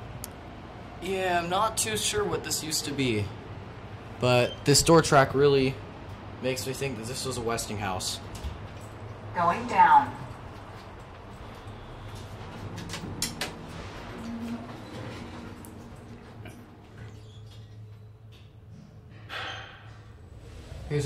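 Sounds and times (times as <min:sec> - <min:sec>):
elevator low hum: 0:08.0 - 0:19.2
elevator doors closing: 0:12.4 - 0:18.2
short tone: 0:14.1 - 0:16.1.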